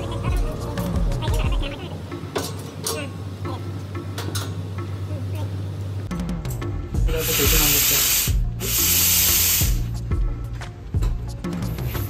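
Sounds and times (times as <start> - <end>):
steam hissing from espresso machine: 7.1 - 9.9.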